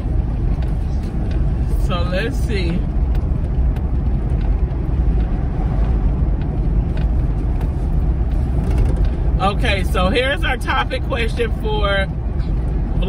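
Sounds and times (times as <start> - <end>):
car interior road and engine rumble: 0.0 - 13.0.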